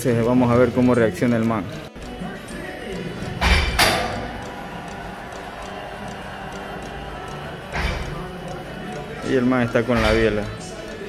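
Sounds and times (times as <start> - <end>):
gym room noise: 1.8 - 11.0.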